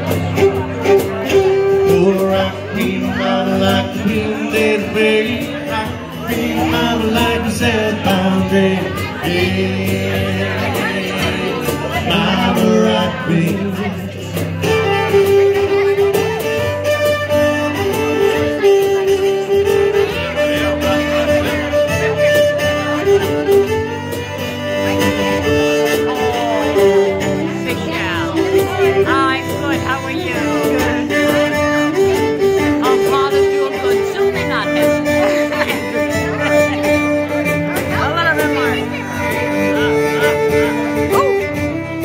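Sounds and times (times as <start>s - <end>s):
fiddle melody: 0.0s - 42.0s
strummed acoustic guitar: 0.0s - 42.0s.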